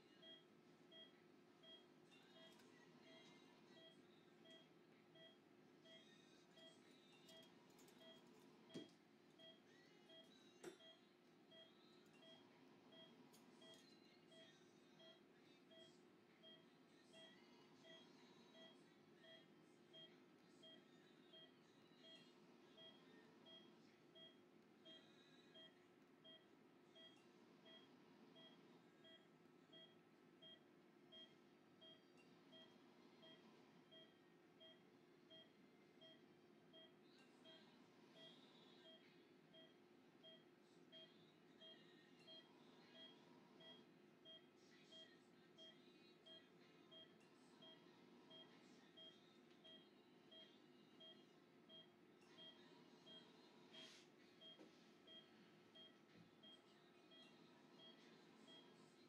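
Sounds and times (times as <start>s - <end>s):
low room hum: 0.0s - 59.0s
patient monitor beeps: 0.1s - 58.8s.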